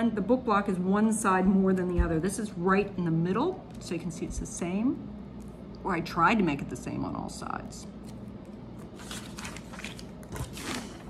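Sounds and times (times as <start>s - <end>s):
paper sheet rustling: 8.9s - 11.0s.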